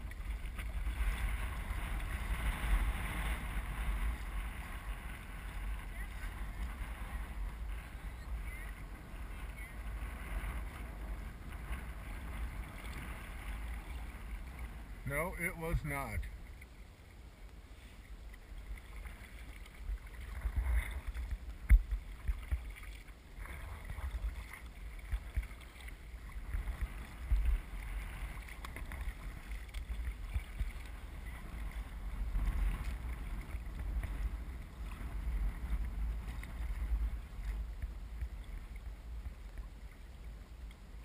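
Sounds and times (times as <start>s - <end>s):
wind buffeting microphone: 0.0s - 16.5s, 23.4s - 39.5s
paddle splashing: 0.0s - 41.0s
water washing against hull: 0.0s - 41.0s.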